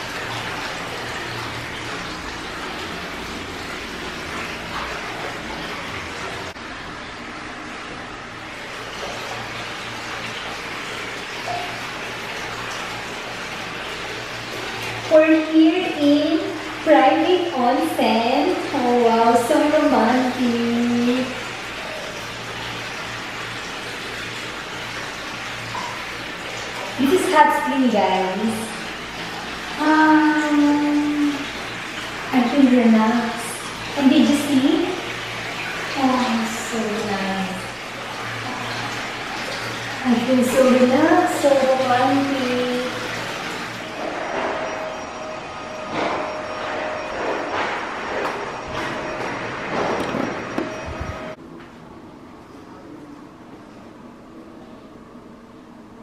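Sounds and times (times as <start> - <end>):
water pouring into a bath: 0.0 - 51.4.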